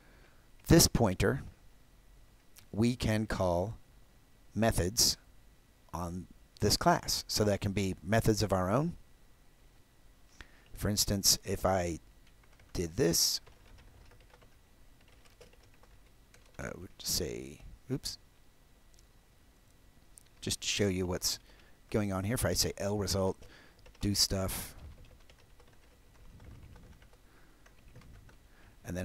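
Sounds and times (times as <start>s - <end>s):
typing on computer keyboard: 12.2s - 12.8s, 13.4s - 16.6s, 23.4s - 24.1s, 24.9s - 28.4s.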